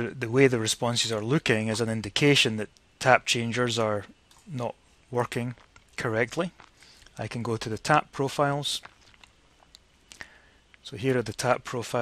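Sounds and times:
man speaking: 0.0 - 8.9, 10.8 - 12.0.

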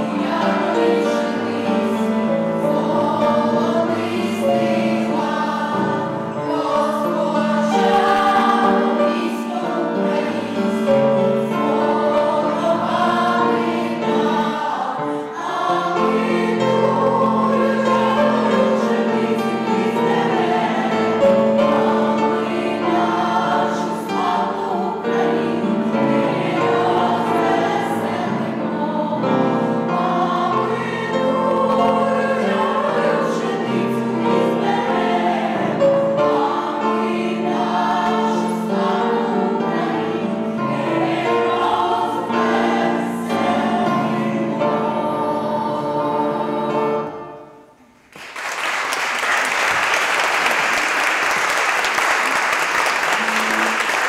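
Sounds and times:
choir singing: 0.0 - 48.0.

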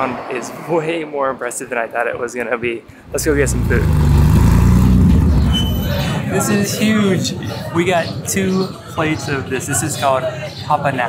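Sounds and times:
sports car driving past: 3.1 - 6.3.

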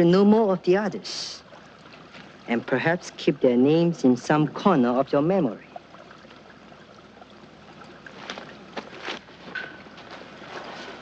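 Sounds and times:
film soundtrack hiss: 0.0 - 11.0.

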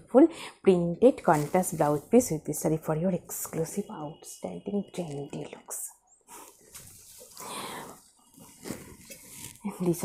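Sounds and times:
fabric rustling and swishing: 1.2 - 2.4, 6.6 - 7.5, 8.3 - 9.7.

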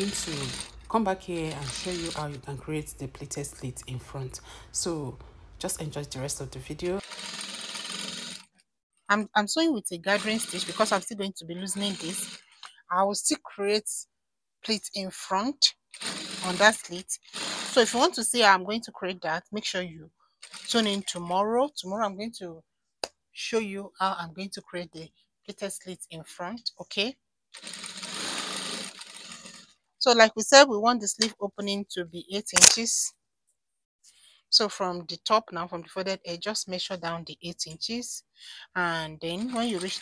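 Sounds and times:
sewing machine running: 0.0 - 2.6, 6.8 - 8.5, 10.0 - 11.1, 11.7 - 12.6, 16.0 - 18.2, 20.4 - 21.1, 27.6 - 29.7, 39.3 - 40.0.

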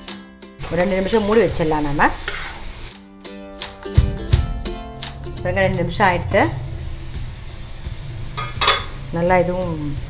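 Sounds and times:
background music: 0.0 - 10.0
vegetables sizzling in oil: 0.6 - 2.9, 6.7 - 10.0
metal spatula stirring in a pan: 2.2 - 2.9.

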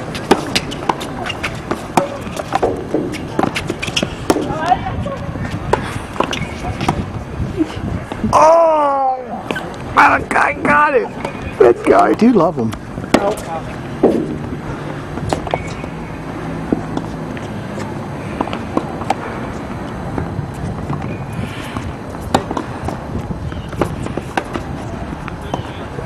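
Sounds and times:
racket hitting tennis ball: 0.0 - 4.8, 5.5 - 7.1, 13.0 - 16.0, 17.8 - 23.1, 23.7 - 24.9.

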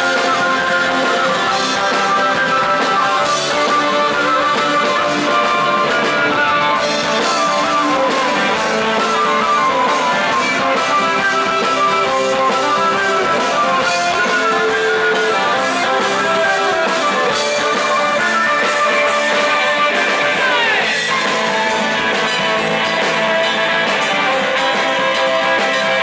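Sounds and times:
drum kit with cymbals: 0.0 - 26.0
electric bass: 0.0 - 26.0.

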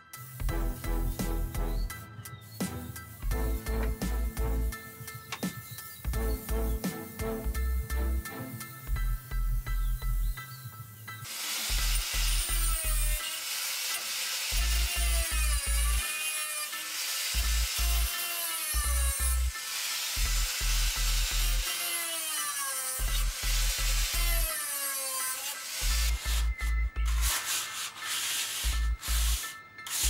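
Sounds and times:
electronic music with bass beat: 0.3 - 8.2, 8.8 - 10.4
angle grinder cutting steel: 11.2 - 30.0.

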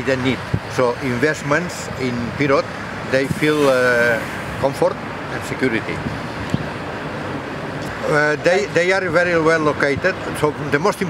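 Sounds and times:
wind on microphone: 3.2 - 4.6.

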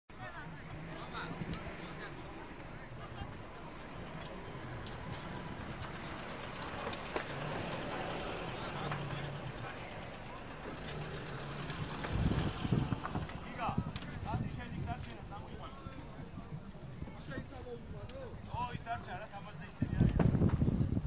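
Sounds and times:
crowd voices: 0.1 - 21.0
vehicle engine running: 0.3 - 14.4.

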